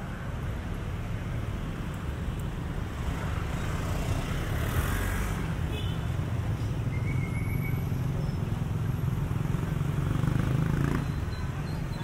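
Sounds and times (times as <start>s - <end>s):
motorcycles and cars passing: 0.0s - 12.0s.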